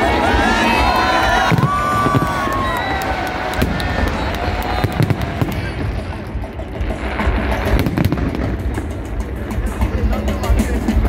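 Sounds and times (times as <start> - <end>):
fireworks bangs and crackles: 0.0 - 11.0.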